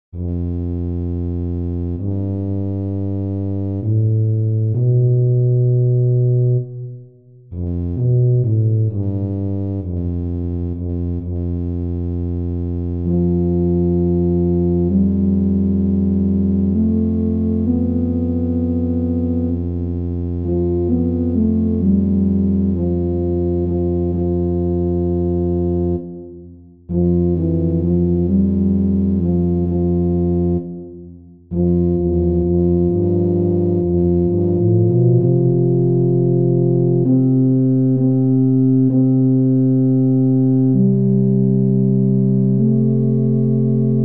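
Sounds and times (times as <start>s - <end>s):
synthesized tuba melody: 0.2s - 44.0s.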